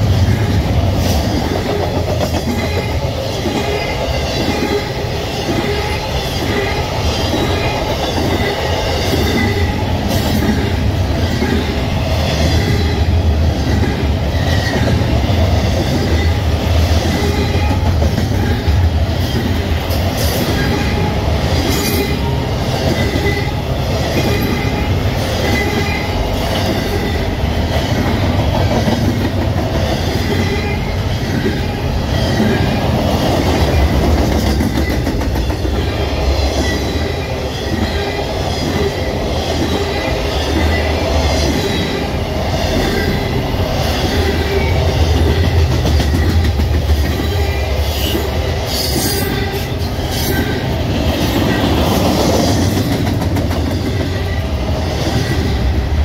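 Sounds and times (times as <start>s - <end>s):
freight train wheels rumbling: 0.0s - 56.0s.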